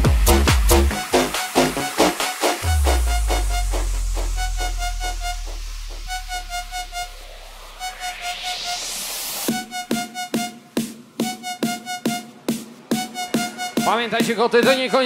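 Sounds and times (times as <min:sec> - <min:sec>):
fast drum beat: 0:00.0 - 0:05.4, 0:11.1 - 0:15.0
high synth riff: 0:00.0 - 0:15.0
rising noise sweep: 0:00.3 - 0:11.4
deep bass boom: 0:02.6 - 0:08.2.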